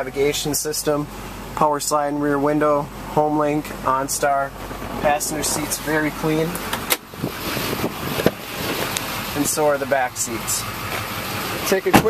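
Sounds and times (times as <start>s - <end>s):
diesel engine idling: 0.0s - 12.0s
wind rushing on microphone: 7.1s - 8.4s.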